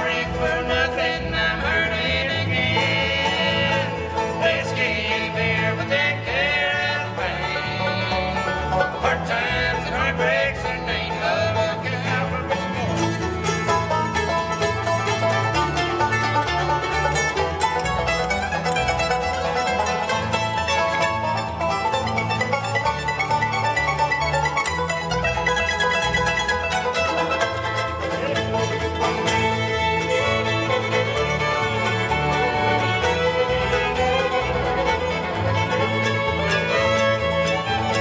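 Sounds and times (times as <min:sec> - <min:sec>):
bluegrass band playing: 0:00.0 - 0:38.0.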